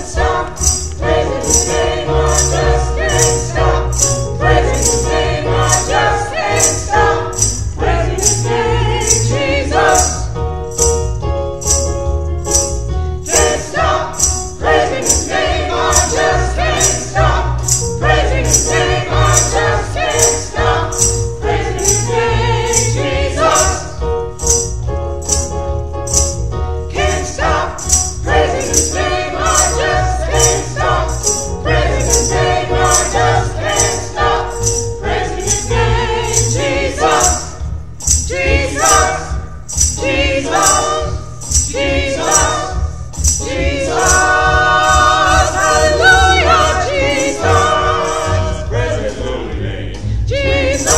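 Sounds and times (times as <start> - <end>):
gospel choir singing a hymn: 0.0 - 10.6, 13.2 - 24.6, 26.8 - 50.9
high percussion beat: 0.0 - 49.6, 50.3 - 50.9
keyboard accompaniment: 0.0 - 50.9.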